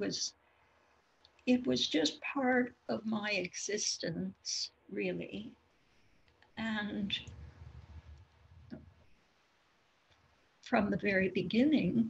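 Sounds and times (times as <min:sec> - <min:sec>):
woman speaking: 0:00.0 - 0:00.3, 0:01.5 - 0:05.5, 0:06.6 - 0:07.3, 0:10.7 - 0:12.0
low rumble: 0:06.7 - 0:09.0.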